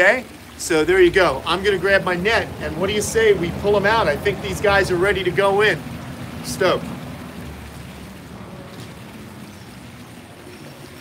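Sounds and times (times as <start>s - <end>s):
water rushing from waterfall: 0.0s - 11.0s.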